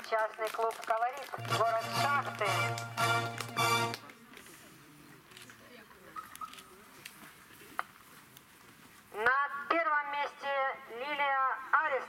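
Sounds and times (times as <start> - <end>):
announcer speaking: 1.4 - 3.9.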